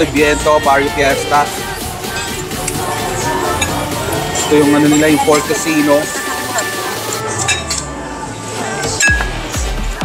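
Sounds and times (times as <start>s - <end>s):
cutlery clinking on plates: 7.4s - 7.9s.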